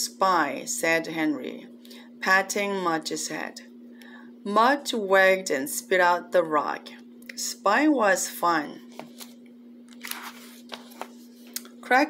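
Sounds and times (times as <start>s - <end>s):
steady hum: 0.0s - 12.0s
paper page turning: 9.0s - 11.6s.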